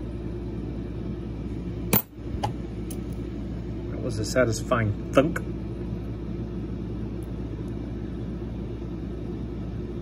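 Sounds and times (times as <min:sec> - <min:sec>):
coin dropping into plastic box: 0:01.9 - 0:02.1.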